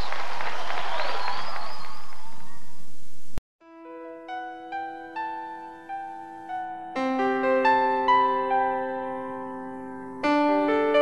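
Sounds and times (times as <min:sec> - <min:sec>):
audience applauding and cheering: 0:00.0 - 0:02.8.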